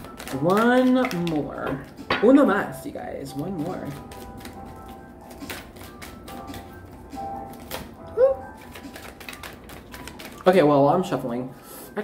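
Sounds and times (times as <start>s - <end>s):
cards being shuffled: 0.0s - 2.2s, 3.4s - 10.6s
faint background music: 0.0s - 12.0s.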